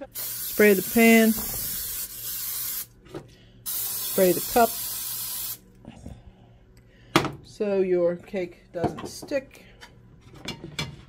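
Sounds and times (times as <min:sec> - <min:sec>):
aerosol spray hissing: 0:00.0 - 0:02.9, 0:03.7 - 0:05.6.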